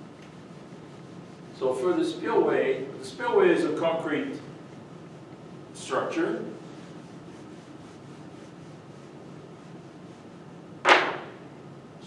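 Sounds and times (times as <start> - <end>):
room hum: 0.0 - 12.0
eraser swish-knock on whiteboard: 10.8 - 11.4.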